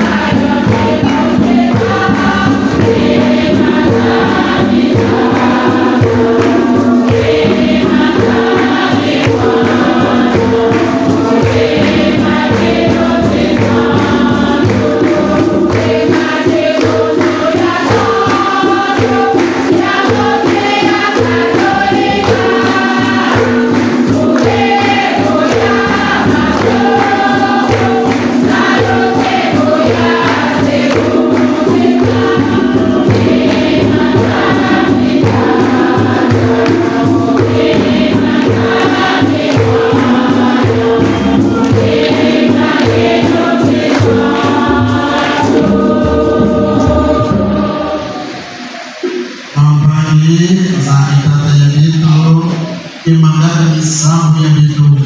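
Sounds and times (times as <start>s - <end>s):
church choir singing a hymn: 0.0s - 55.0s
musical accompaniment: 0.0s - 55.0s.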